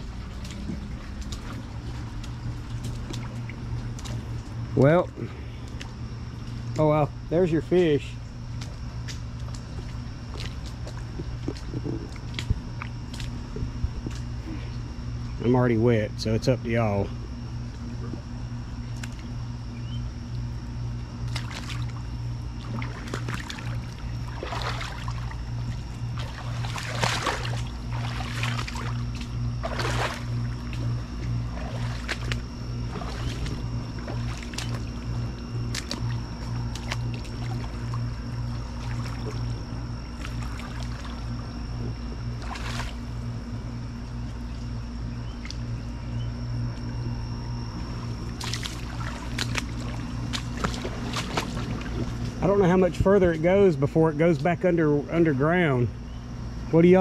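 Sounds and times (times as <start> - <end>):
footsteps wading through creek: 0.0 - 14.8, 20.3 - 43.2, 46.6 - 53.5
faint high whine: 0.0 - 57.0
low mechanical hum: 0.0 - 57.0.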